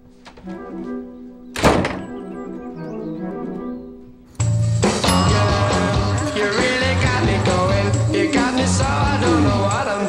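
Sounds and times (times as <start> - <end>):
door shutting thunk: 1.6 - 2.2.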